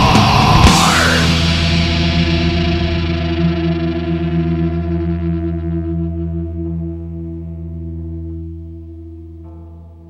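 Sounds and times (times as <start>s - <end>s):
metal band playing: 0.0s - 6.4s
ringing electric guitar chord: 0.0s - 10.0s.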